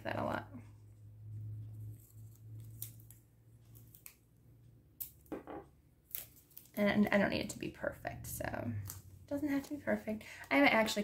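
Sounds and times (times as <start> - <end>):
low steady hum: 0.0 - 11.0
paper tape ripping and crinkling: 1.9 - 4.2, 6.1 - 6.8.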